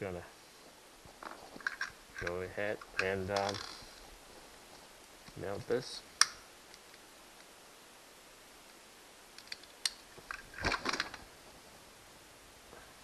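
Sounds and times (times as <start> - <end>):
small parts clicking and rustling: 1.2 - 4.0, 9.3 - 11.3.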